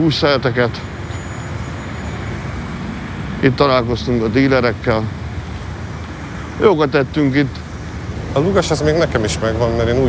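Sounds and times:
man talking: 0.0s - 1.0s, 3.4s - 5.3s, 6.5s - 10.0s
street traffic hum: 0.0s - 10.0s.

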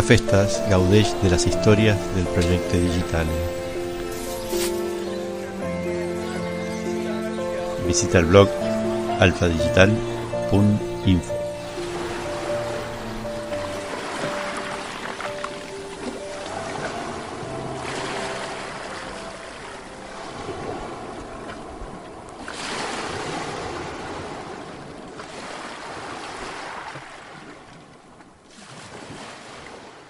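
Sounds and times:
soft music notes: 0.0s - 22.1s
ocean surf washing onto beach: 8.2s - 27.6s.

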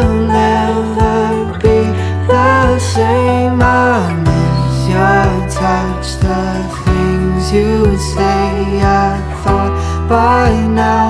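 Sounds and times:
acoustic guitar: 0.0s - 11.0s
person singing long notes: 0.0s - 11.0s.

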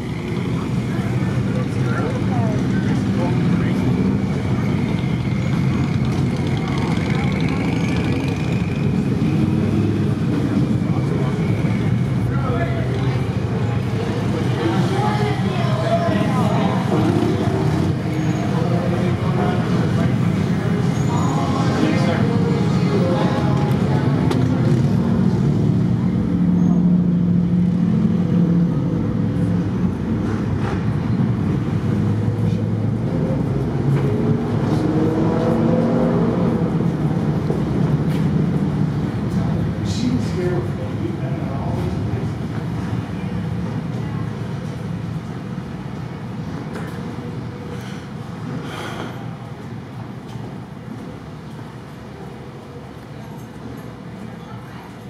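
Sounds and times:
cars passing by: 0.0s - 55.0s.

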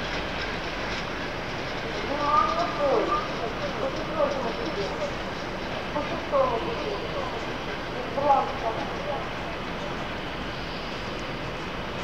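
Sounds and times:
train wheels on rails: 0.0s - 12.0s
faint voices: 1.8s - 10.3s.

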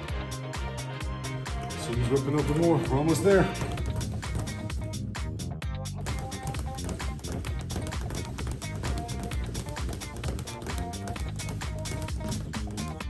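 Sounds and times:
background music: 0.0s - 13.0s
speed bag drumming on rebound board: 2.4s - 5.3s, 5.9s - 13.0s.

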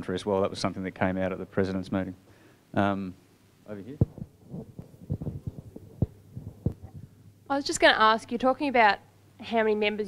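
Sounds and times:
microphone handling thumps: 3.9s - 7.2s.

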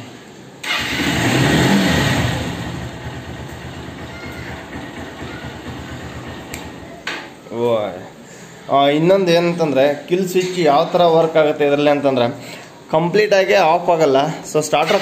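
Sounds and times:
electric starter cranking: 0.6s - 2.8s, 14.8s - 15.0s
motorcycle engine revving and idling: 0.6s - 6.9s.

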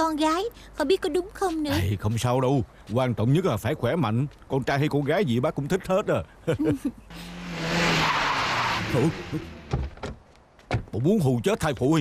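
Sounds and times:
van tyres screeching: 7.1s - 10.2s.

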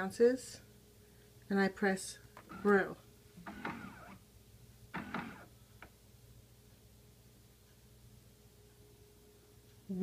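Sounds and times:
coffee maker mechanical sounds: 2.4s - 4.2s, 5.0s - 5.5s.

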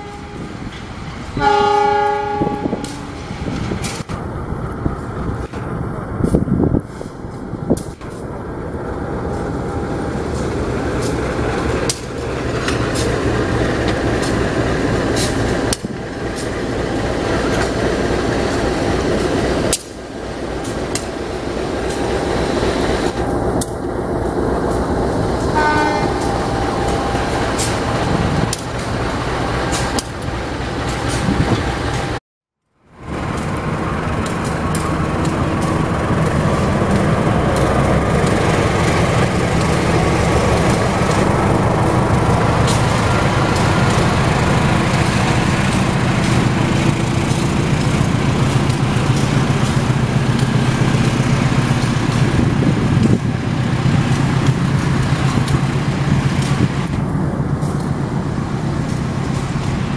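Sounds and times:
locomotive engine drone: 0.0s - 59.9s.

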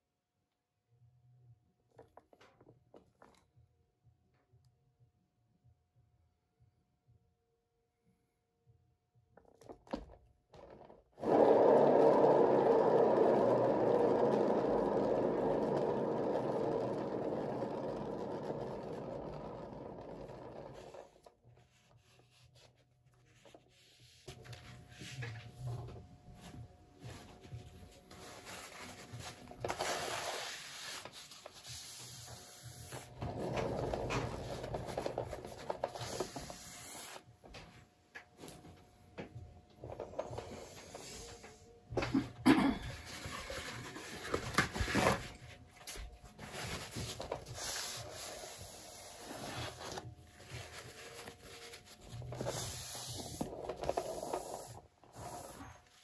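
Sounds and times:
paint spinner spinning: 10.6s - 21.9s, 43.0s - 56.0s
rubbing and scraping: 10.6s - 37.2s, 42.9s - 56.0s.

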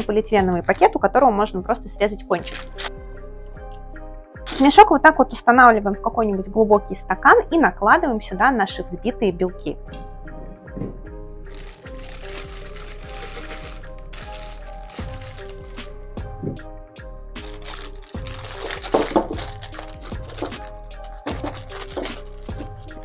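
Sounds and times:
soft background music: 0.0s - 23.0s
plastic piping bag crinkling: 2.4s - 2.9s, 11.5s - 16.0s, 17.4s - 22.9s.

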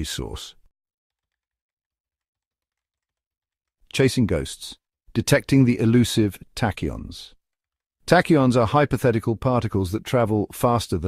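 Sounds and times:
narrator speaking: 0.0s - 0.7s, 3.9s - 7.4s, 8.1s - 11.0s.

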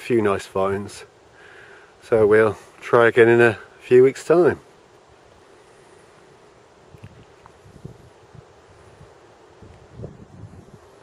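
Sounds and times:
wind hiss on microphone: 0.0s - 11.0s
low wind buffeting thumps: 6.8s - 11.0s.

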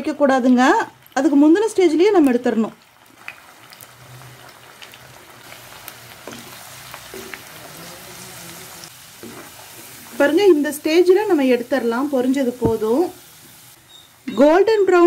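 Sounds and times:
food sizzling in hot oil: 0.0s - 15.0s
faint crackles and clicks: 0.4s - 1.3s, 2.0s - 7.8s.

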